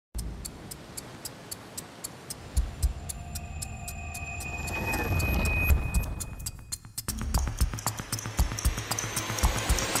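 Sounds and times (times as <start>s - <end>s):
clock ticking: 0.2s - 10.0s
steady high tone: 2.5s - 6.7s
swelling music: 2.6s - 10.0s.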